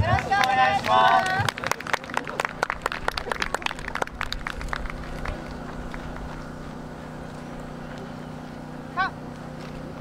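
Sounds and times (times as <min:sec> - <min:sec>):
scattered hand claps: 0:00.0 - 0:06.5
steady low hum: 0:00.0 - 0:10.0.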